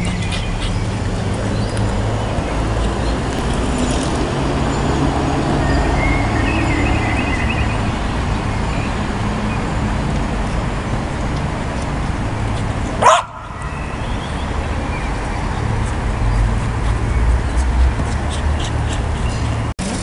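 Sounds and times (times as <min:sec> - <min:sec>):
traffic rumble: 0:00.0 - 0:20.0
small dog yipping: 0:13.0 - 0:13.5.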